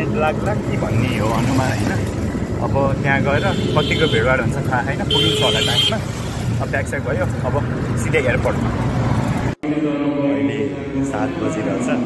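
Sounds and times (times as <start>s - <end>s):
man talking: 0.0s - 2.0s, 2.6s - 6.0s, 6.6s - 8.7s, 10.4s - 12.0s
rickshaw road noise and rumble: 0.0s - 9.6s.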